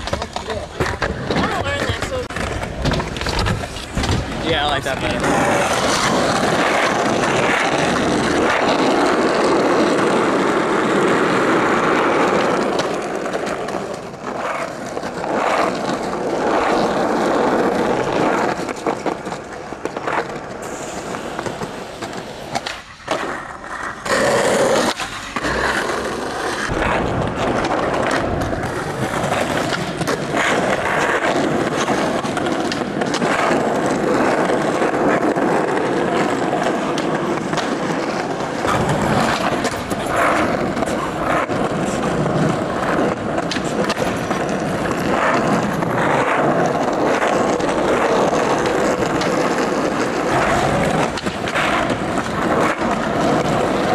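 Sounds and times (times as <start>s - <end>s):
skateboard knocking on ground: 0.0s - 53.9s
skateboard wheels rolling: 0.0s - 53.9s.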